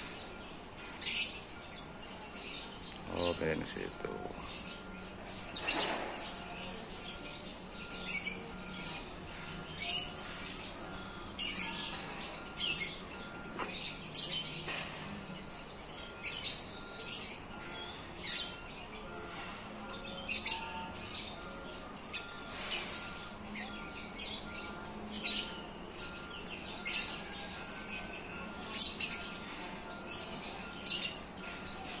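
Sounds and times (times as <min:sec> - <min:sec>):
birds chirping: 0:00.0 - 0:32.0.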